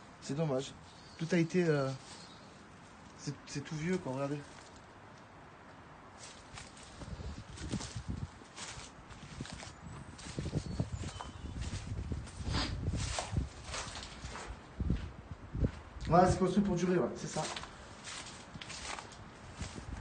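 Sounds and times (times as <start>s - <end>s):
footsteps on earth and grass: 3.8s - 5.0s, 6.1s - 15.9s, 17.2s - 20.0s.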